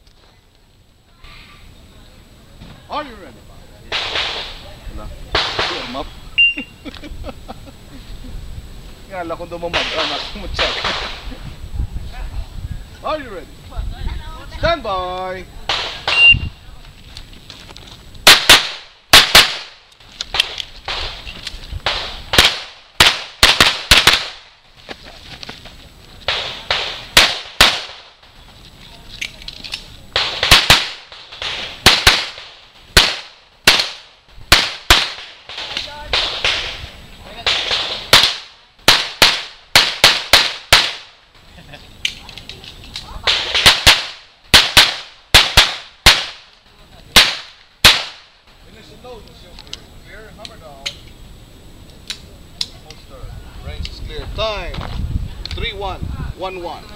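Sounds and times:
pistol shots with echo: 0:26.3 - 0:28.1, 0:30.2 - 0:36.8, 0:47.2 - 0:48.3.

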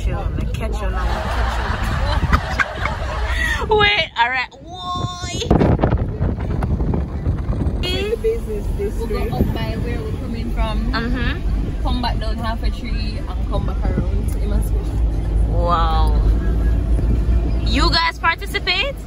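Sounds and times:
people talking: 0:00.0 - 0:16.4, 0:17.7 - 0:19.0
car engine and tyre rumble: 0:00.0 - 0:19.0.

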